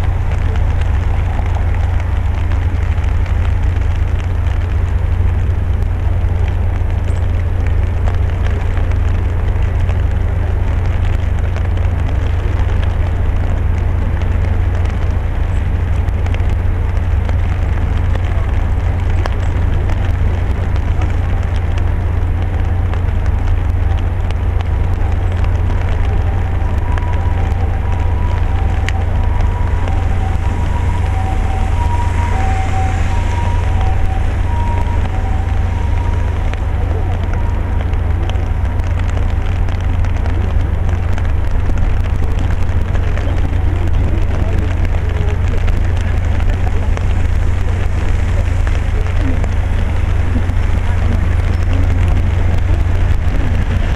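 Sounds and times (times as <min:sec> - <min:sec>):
rain pattering on an umbrella: 0:00.0 - 0:53.9
steady low rumble: 0:00.0 - 0:53.9.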